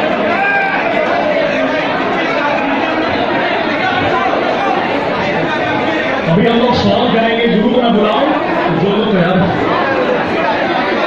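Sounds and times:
hubbub of many people talking: 0.0s - 11.0s.

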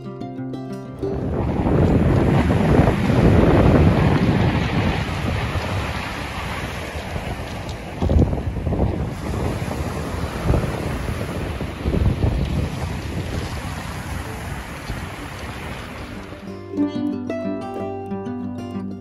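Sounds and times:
wind buffeting microphone: 1.0s - 16.5s
waves breaking on shingle beach: 1.1s - 16.6s.

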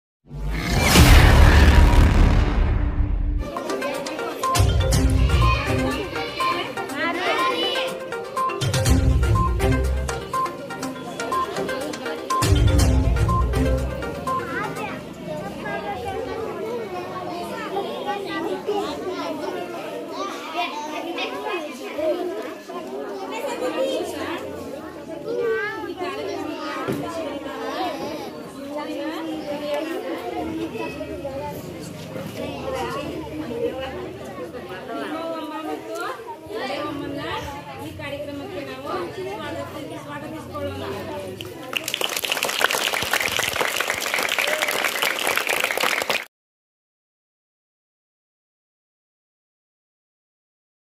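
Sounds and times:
children chattering: 3.5s - 8.8s, 9.5s - 42.4s
crowd applause: 41.6s - 46.3s.

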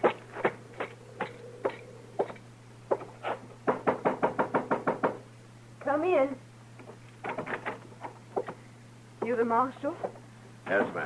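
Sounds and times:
knocking on wooden door: 3.6s - 5.2s.

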